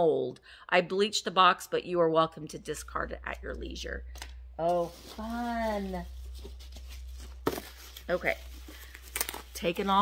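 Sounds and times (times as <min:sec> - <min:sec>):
packaging rustling: 0:04.7 - 0:10.0
sharp packaging crackle: 0:06.2 - 0:10.0.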